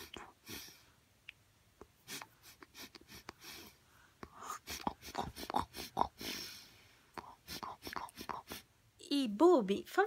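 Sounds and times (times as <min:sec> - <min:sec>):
lip smacks and tongue clicks: 0:01.2 - 0:03.4, 0:07.2 - 0:08.6
whispered breaths: 0:02.0 - 0:08.7.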